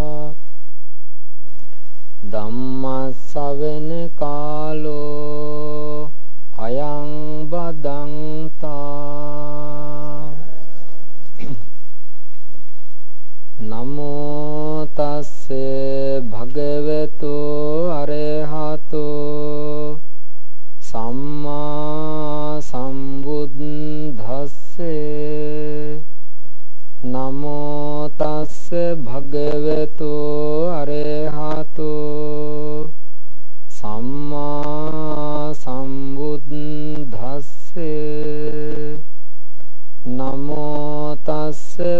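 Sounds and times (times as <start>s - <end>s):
man chanting: 0.0s - 0.5s, 2.2s - 11.0s, 13.6s - 20.0s, 20.8s - 26.1s, 27.0s - 33.0s, 33.7s - 39.1s, 40.0s - 41.9s.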